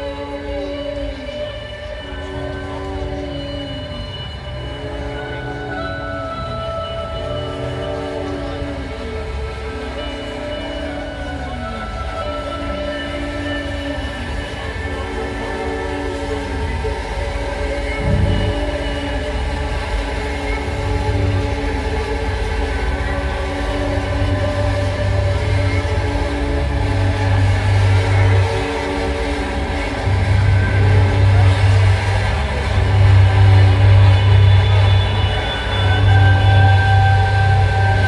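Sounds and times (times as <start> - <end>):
guitar feedback drone: 0.0 - 38.0
low bass swells: 16.2 - 38.0.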